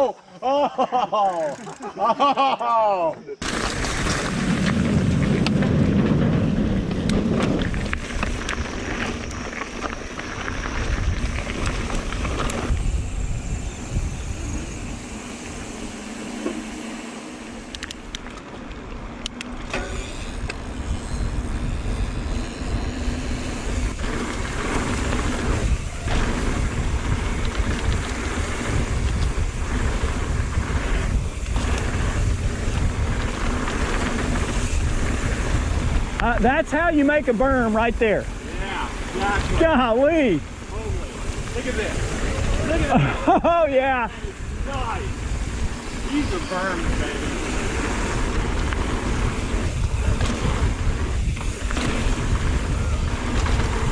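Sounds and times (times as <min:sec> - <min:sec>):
bike tyres rolling: 0:01.1 - 0:02.5, 0:03.4 - 0:53.9
deep rumble: 0:03.4 - 0:15.7, 0:20.6 - 0:36.2, 0:44.1 - 0:53.9
wind rushing over microphone: 0:03.4 - 0:16.2, 0:19.0 - 0:53.9
sharp clicks: 0:17.6 - 0:20.6.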